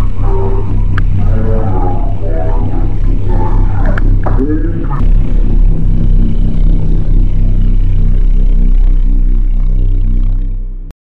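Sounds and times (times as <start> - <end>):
eerie ambient drone: 0.0 - 10.9.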